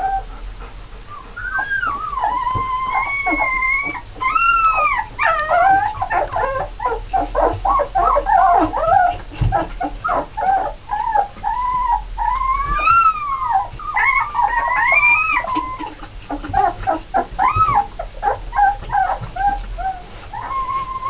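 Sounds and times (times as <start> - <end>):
puppies crying and whimpering: 0.0 - 21.0.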